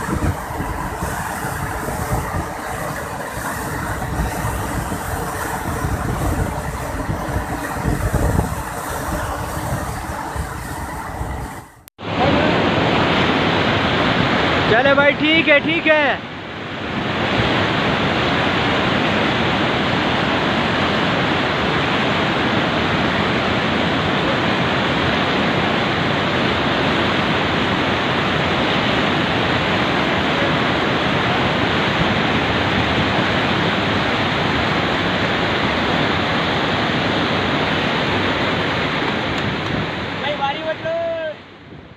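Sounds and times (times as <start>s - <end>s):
river whitewater rushing: 0.0s - 41.8s.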